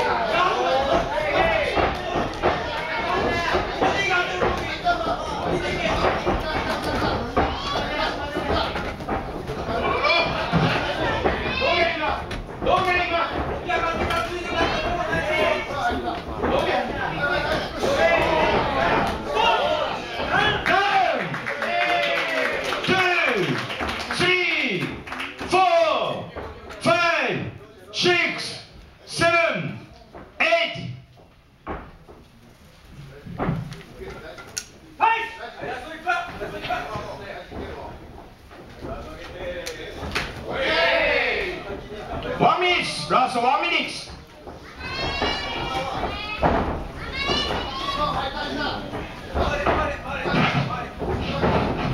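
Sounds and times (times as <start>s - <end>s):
people shouting and calling: 0.0s - 23.4s, 40.0s - 51.9s
spectators shouting: 17.2s - 22.6s, 44.8s - 48.8s.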